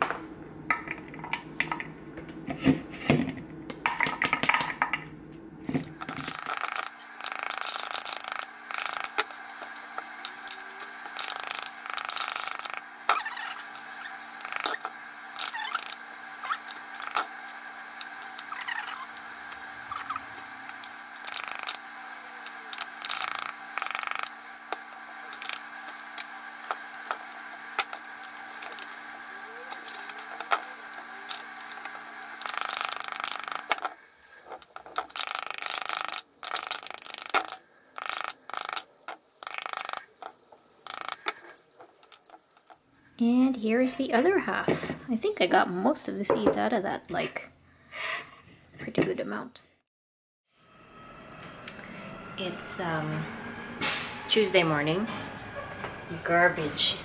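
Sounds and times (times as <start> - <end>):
steady hum: 5.1 - 43.5.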